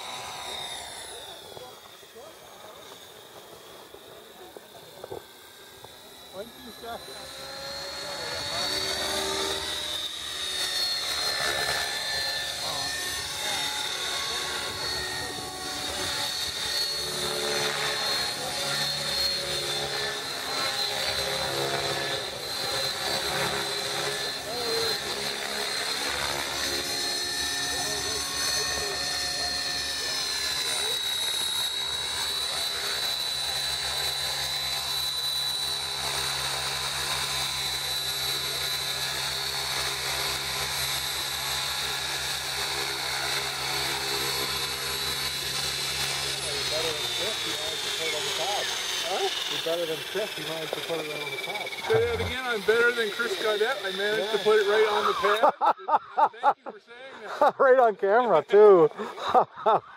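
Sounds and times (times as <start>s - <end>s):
rotor blades chopping: 0.0s - 55.1s
rc helicopter motor whine: 0.0s - 55.6s.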